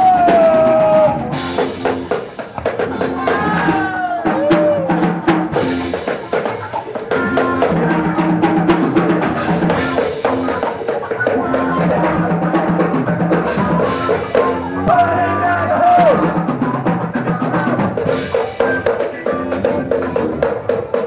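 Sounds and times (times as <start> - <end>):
drum hits: 0.0 - 21.0
live band playing: 0.0 - 21.0.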